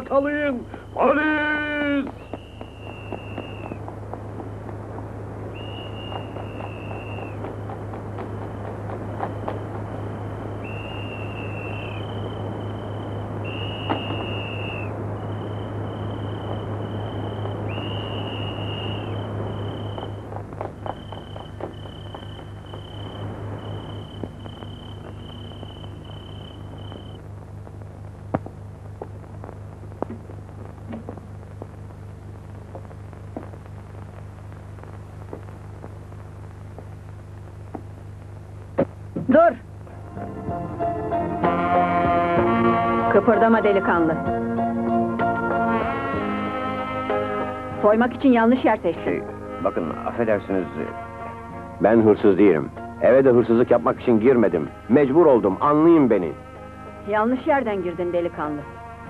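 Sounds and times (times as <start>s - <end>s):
steady low hum: 0.0s - 59.0s
rushing noise: 0.4s - 28.0s
police whistles blowing: 2.2s - 3.8s, 5.5s - 7.4s, 10.5s - 20.2s.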